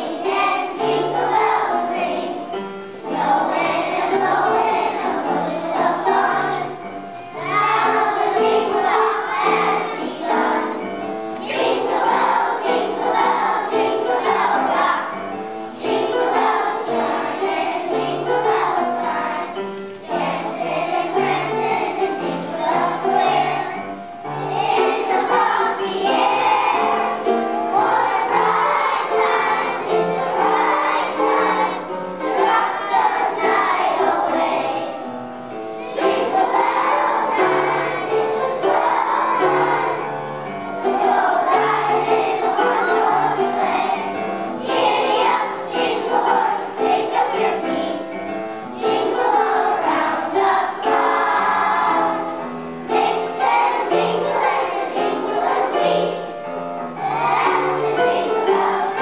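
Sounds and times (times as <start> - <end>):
children's choir singing: 0.0 - 59.0
musical accompaniment: 0.0 - 59.0.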